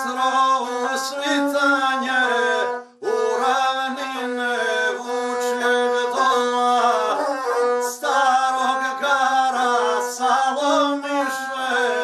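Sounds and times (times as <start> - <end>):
bowed fiddle drone: 0.0 - 12.0
man singing ornamented epic song: 0.0 - 12.0.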